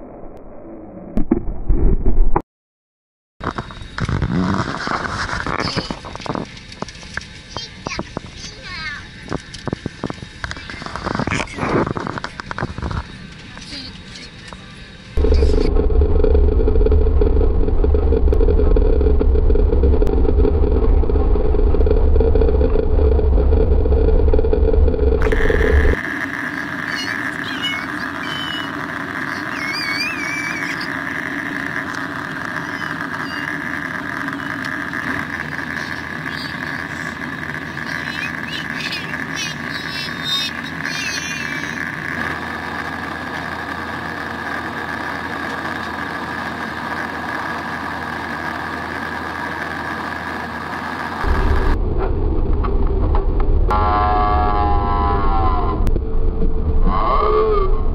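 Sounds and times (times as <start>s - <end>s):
cabin hum with high whine: 3.4s - 57.9s
jet engine and runway rumble: 3.4s - 57.9s.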